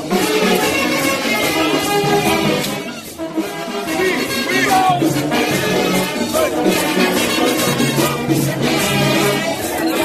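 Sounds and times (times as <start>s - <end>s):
lively latin music: 0.0s - 10.0s
maracas shaking: 0.0s - 10.0s.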